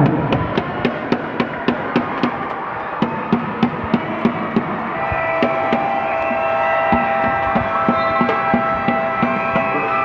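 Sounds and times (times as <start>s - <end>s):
steady drum beat: 0.0s - 10.0s
held pitched tones: 5.0s - 10.0s.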